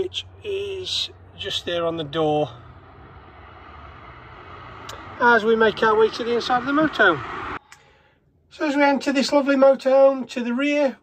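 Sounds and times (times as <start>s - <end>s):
distant road traffic rumble: 0.0s - 7.6s.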